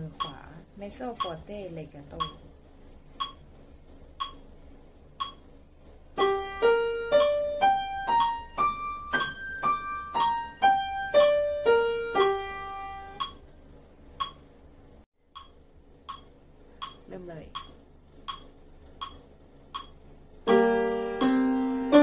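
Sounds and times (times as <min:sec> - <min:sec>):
metronome clicking: 0:00.2 - 0:00.4, 0:01.2 - 0:02.5, 0:03.2 - 0:03.4, 0:04.2 - 0:04.5, 0:05.2 - 0:05.5, 0:06.2 - 0:13.4, 0:14.2 - 0:14.5, 0:15.3 - 0:22.0
piano playing an arpeggio: 0:06.2 - 0:13.2, 0:20.5 - 0:22.0.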